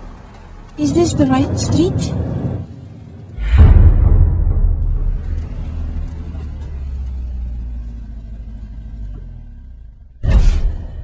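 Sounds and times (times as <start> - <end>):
deep low rumble: 0.8 - 9.0.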